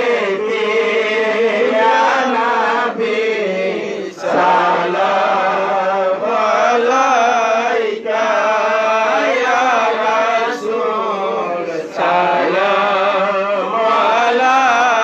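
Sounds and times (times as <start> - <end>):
men chanting through a loudspeaker: 0.0 - 15.0.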